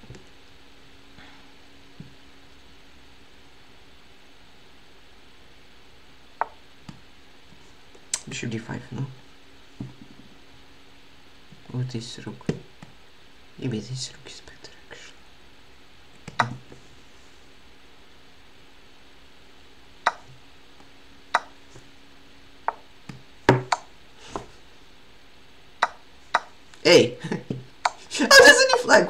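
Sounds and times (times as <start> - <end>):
faint steady hum: 0.0 - 29.0
man speaking: 26.8 - 27.2, 28.1 - 29.0.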